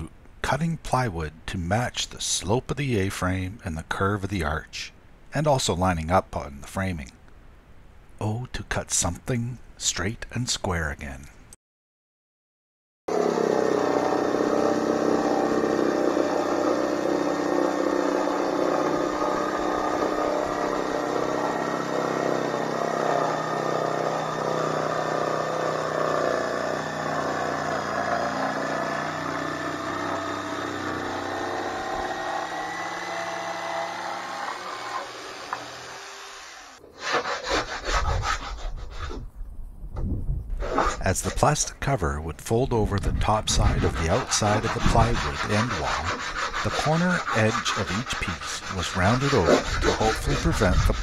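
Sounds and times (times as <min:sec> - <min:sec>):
jigsaw cutting plywood: 0:13.1 - 0:39.0, 0:43.2 - 0:51.0
hand tool rubbing wood edge: 0:13.1 - 0:39.2, 0:40.6 - 0:41.7, 0:43.2 - 0:51.0.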